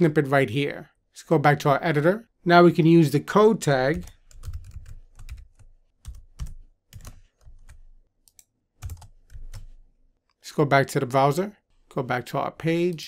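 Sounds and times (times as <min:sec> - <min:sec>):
typing on computer keyboard: 0:03.9 - 0:09.7.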